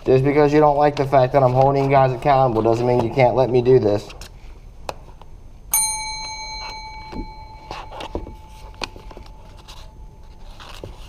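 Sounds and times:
desk service bell ringing: 5.7 - 11.0.

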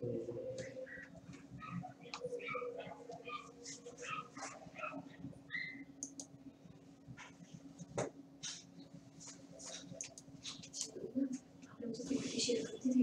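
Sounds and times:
low steady hum: 0.0 - 13.0
faint clicks: 6.0 - 6.3.

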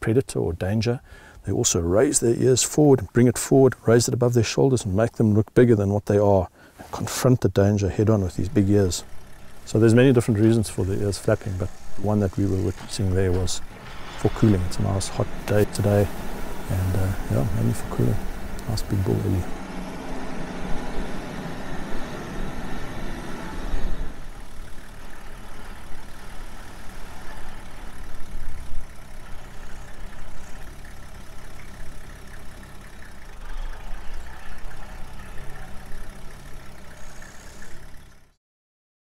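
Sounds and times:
vehicle engine rumble: 6.8 - 38.4.

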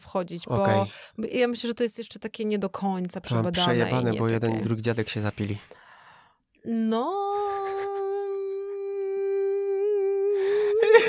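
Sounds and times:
person holding long vocal note: 7.1 - 11.0.

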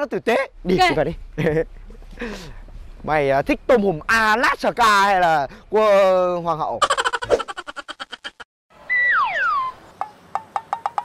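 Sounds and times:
falling whistle-like tones: 8.8 - 9.8.

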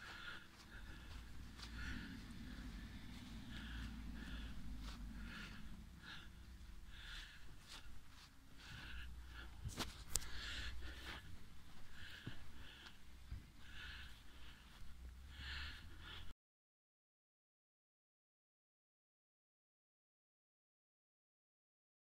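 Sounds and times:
low handling rumble: 0.0 - 15.4
faint close breathing: 0.0 - 16.4.

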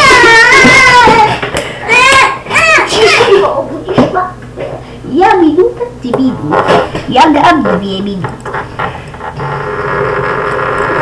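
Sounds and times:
person's voice: 5.1 - 8.3.

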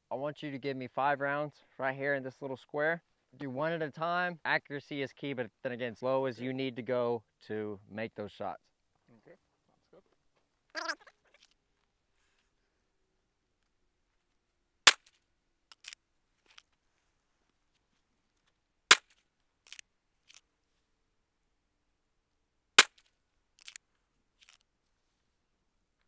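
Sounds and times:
handgun shots: 14.9 - 15.1, 18.9 - 19.2, 22.8 - 23.1.

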